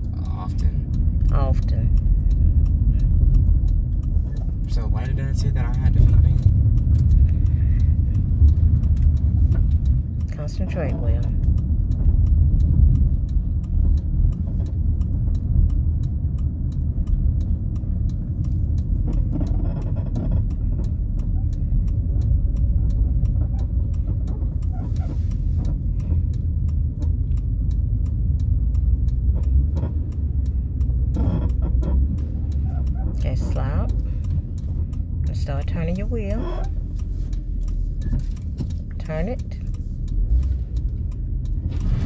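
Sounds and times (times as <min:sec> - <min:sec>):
car engine and road rumble: 0:00.0 - 0:42.0.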